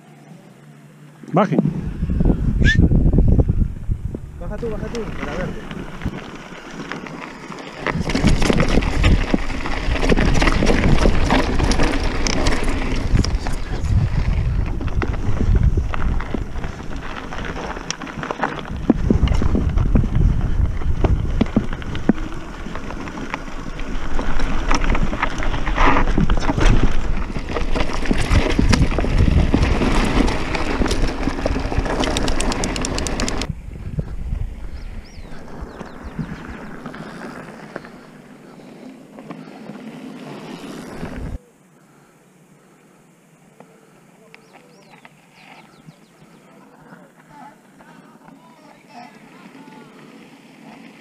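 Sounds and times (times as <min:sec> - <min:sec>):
wind buffeting microphone: 0:01.6 - 0:37.5
bike frame rattling: 0:04.3 - 0:33.5
tyres crunching over gravel: 0:04.6 - 0:33.5.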